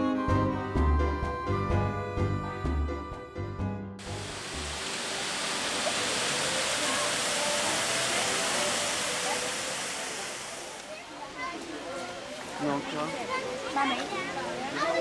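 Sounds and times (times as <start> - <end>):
rushing falling water: 4.0 - 15.0.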